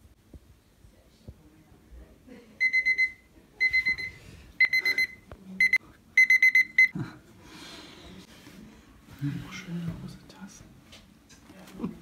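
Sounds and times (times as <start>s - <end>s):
digital timer beeping: 2.6s - 6.9s.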